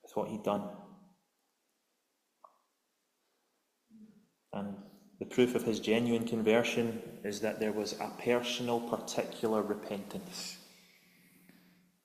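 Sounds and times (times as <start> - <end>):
man's voice: 4.6 - 10.6.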